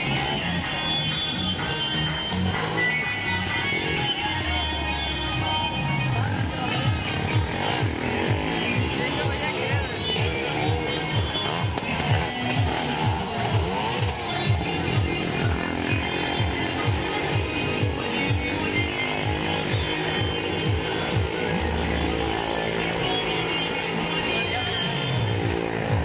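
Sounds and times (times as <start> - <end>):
loud music with rhythmic low pulse: 0.0 - 26.0
motorcycle engine running: 0.0 - 26.0.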